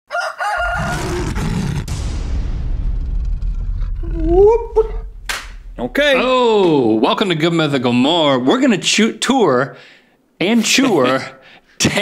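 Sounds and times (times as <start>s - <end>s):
rooster crowing: 0.1s - 1.4s
low rumble: 1.7s - 7.3s.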